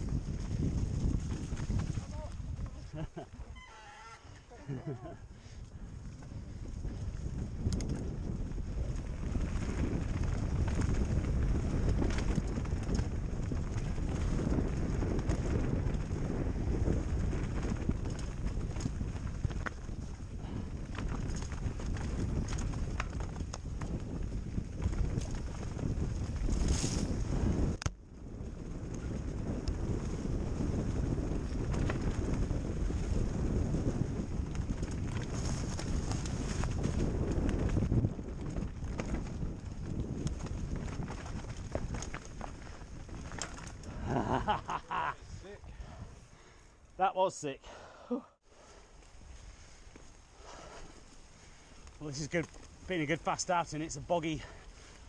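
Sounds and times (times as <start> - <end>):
bike tyre roar and rattle: 0.0 - 47.0, 48.5 - 55.0
wind buffeting microphone: 0.0 - 47.0.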